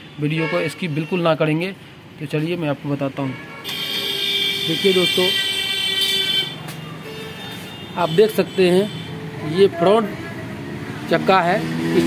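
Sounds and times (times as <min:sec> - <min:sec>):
vehicle horn: 0:03.4 - 0:09.2.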